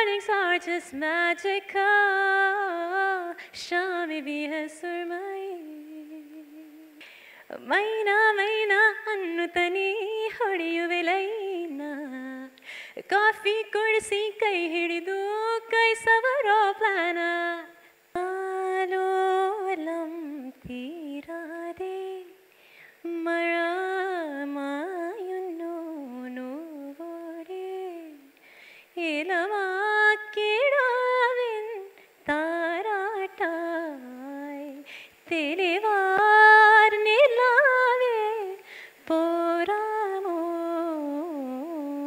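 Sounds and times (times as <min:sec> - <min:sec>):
woman singing unaccompanied: 0:00.0 - 0:42.0
short breath: 0:07.0 - 0:07.5, 0:12.6 - 0:13.0, 0:22.5 - 0:23.0, 0:28.4 - 0:29.0, 0:34.8 - 0:35.2, 0:38.6 - 0:39.0
woman singing lullaby solo: 0:29.0 - 0:42.0.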